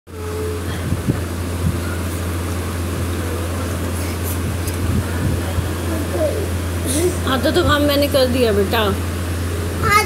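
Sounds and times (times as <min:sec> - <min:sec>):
low mechanical hum: 0:00.1 - 0:10.0.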